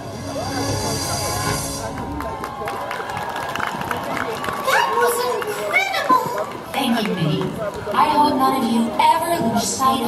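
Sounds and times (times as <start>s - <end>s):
amplified voices over loudspeakers: 4.8s - 10.0s.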